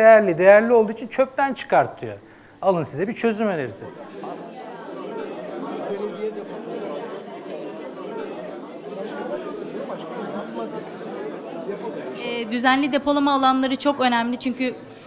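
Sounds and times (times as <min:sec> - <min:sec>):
hubbub of group conversations: 0:00.0 - 0:15.0.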